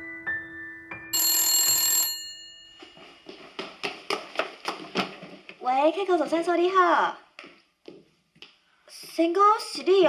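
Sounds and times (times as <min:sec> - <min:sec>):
telephone bell ringing: 0:01.1 - 0:03.1.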